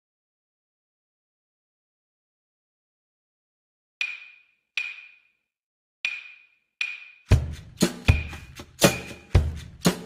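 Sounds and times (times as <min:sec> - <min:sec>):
sharp knocking percussion hits: 0:04.0 - 0:05.4, 0:06.0 - 0:10.0
music track with drums: 0:06.8 - 0:10.0.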